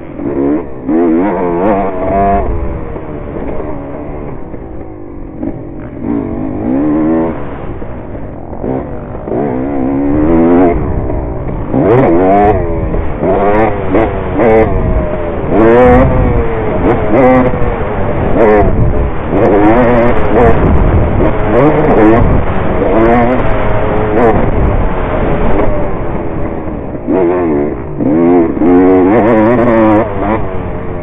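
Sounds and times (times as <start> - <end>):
dirt bike engine revving: 0.0 - 31.0.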